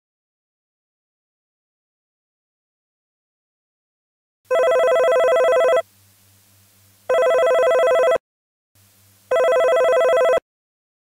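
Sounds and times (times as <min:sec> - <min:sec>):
telephone ringing with fast trill: 0:04.5 - 0:05.9, 0:07.1 - 0:08.2, 0:09.3 - 0:10.4.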